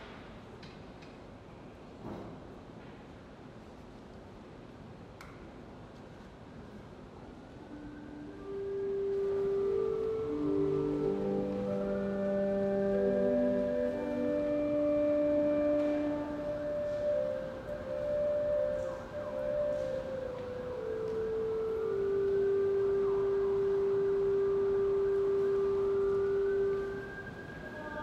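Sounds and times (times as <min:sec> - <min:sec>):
pipe organ playing: 0:07.7 - 0:28.0.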